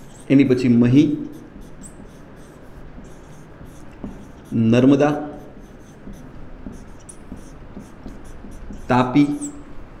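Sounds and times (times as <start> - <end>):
marker squeak: 0.0 - 0.4, 1.3 - 4.6, 5.3 - 9.7
marker scratching on whiteboard: 0.0 - 9.6.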